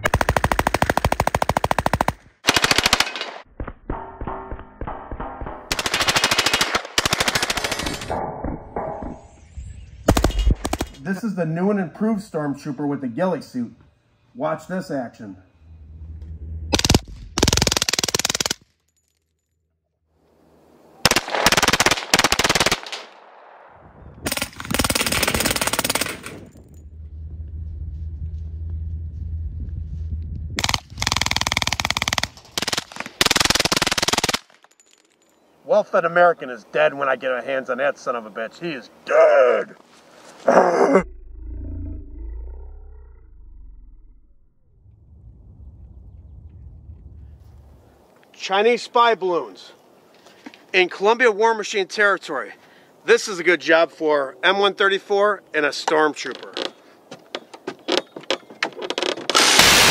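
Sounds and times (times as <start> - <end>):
deep rumbling roar: 15.4 - 17.4, 26.5 - 30.6, 41.0 - 48.0.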